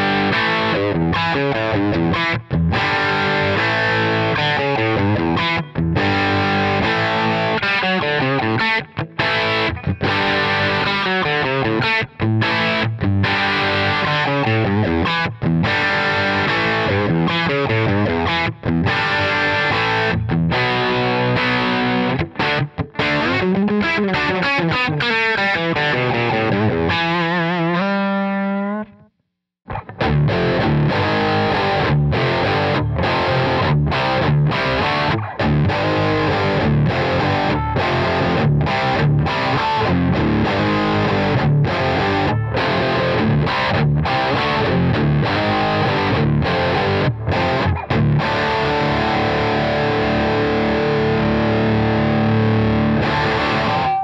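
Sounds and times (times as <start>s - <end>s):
distorted electric guitar: 0.0s - 29.1s, 29.7s - 54.0s.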